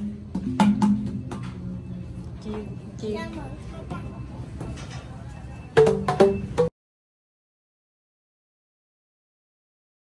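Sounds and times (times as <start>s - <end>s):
hollow bamboo tube strikes: 0.0s - 1.6s, 5.8s - 6.7s.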